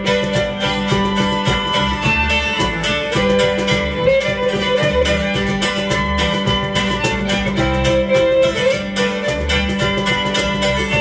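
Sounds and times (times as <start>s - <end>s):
bowed fiddle melody: 0.0s - 11.0s
cajon beat: 0.0s - 11.0s
strummed guitar: 0.0s - 11.0s
strummed mandolin: 0.0s - 11.0s.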